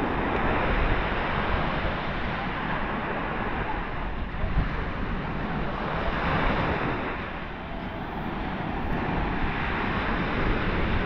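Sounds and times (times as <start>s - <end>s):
waves washing onto sand: 0.0s - 11.0s
wind buffeting microphone: 0.0s - 11.0s.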